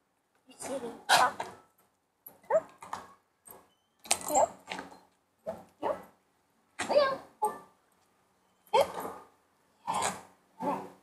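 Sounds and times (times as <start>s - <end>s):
dog barking: 1.1s - 1.4s.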